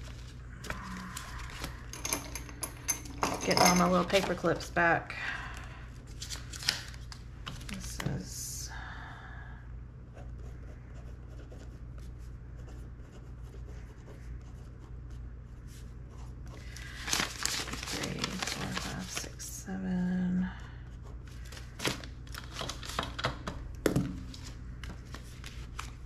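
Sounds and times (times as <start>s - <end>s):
banknotes rustling: 5.6s - 8.0s, 16.6s - 19.4s, 21.4s - 23.4s, 24.3s - 26.0s.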